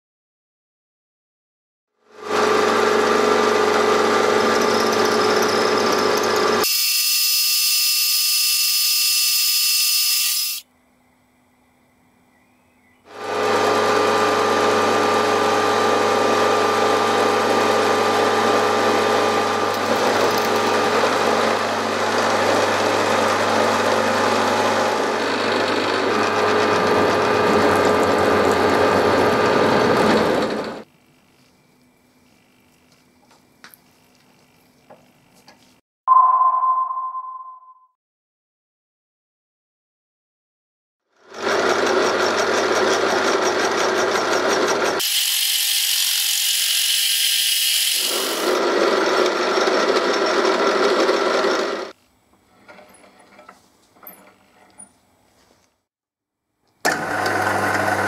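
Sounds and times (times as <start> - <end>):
milling machine cutting metal: 2.2 - 6.7, 13.1 - 30.8, 41.5 - 51.9
high bright machine whine: 2.7 - 10.6.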